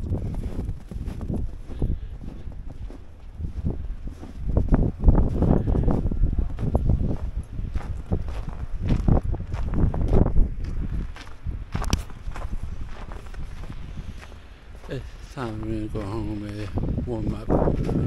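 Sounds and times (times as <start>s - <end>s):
footsteps crunching through snow: 0.0s - 18.0s
low rumble: 0.0s - 18.0s.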